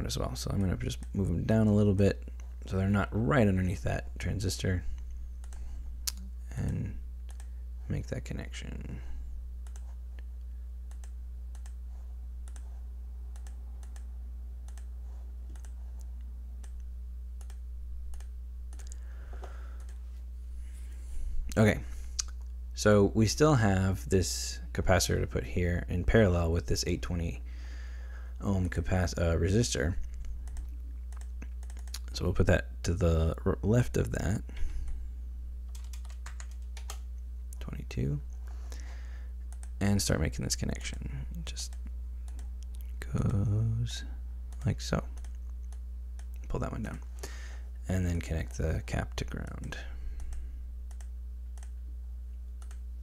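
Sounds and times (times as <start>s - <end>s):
low electrical hum: 0.0s - 53.0s
computer mouse clicks: 5.4s - 6.3s, 7.3s - 7.5s, 9.6s - 9.9s, 10.9s - 11.8s, 12.4s - 12.7s, 13.3s - 14.9s, 15.5s - 19.0s, 19.8s - 20.0s, 30.1s - 32.1s, 39.5s - 39.8s, 44.5s - 46.5s, 50.2s - 51.8s, 52.6s - 52.8s.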